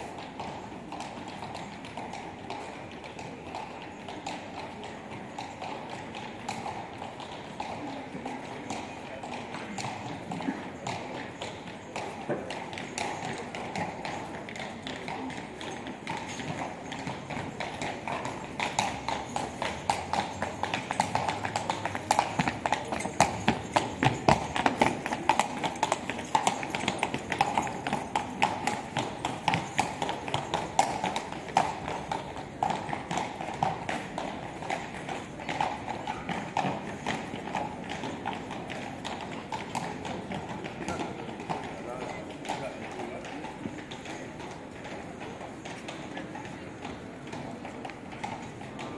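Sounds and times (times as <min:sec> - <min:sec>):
hooves clip-clopping on cobblestones: 0:00.0 - 0:48.9.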